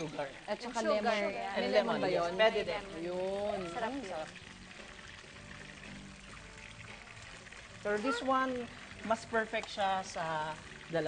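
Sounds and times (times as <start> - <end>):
liquid pouring: 0.0 - 11.0
soft background music: 0.0 - 11.0.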